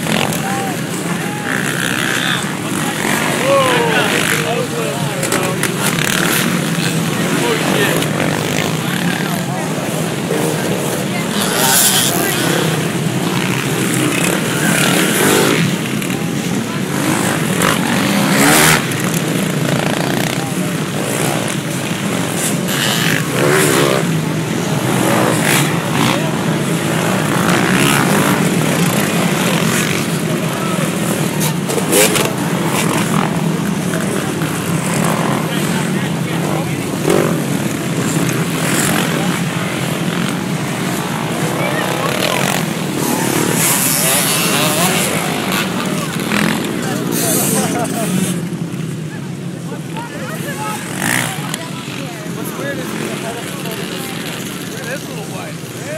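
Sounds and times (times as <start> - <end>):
dirt bike engines roaring: 0.0 - 55.9
spectators' voices: 0.0 - 55.9.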